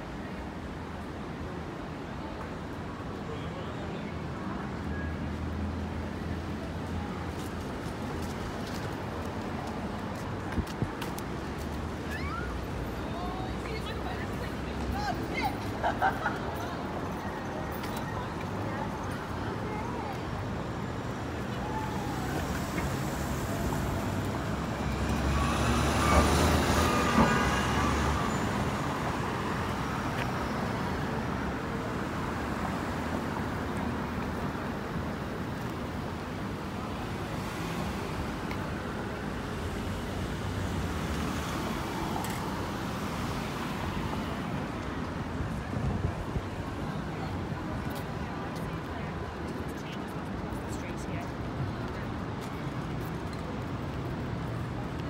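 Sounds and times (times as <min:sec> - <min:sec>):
faint voices of passersby: 0:00.0 - 0:55.0
traffic hum: 0:00.0 - 0:55.0.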